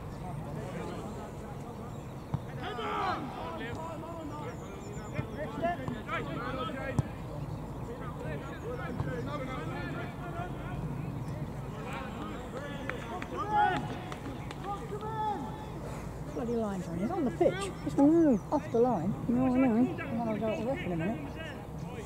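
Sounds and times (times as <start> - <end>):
distant players shouting: 2.3 - 7.3, 8.0 - 16.0.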